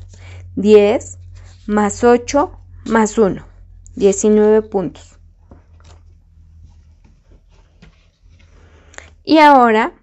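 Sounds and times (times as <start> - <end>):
steady low hum: 0.0 - 10.0
playing cards tapping and rustling: 5.4 - 8.8.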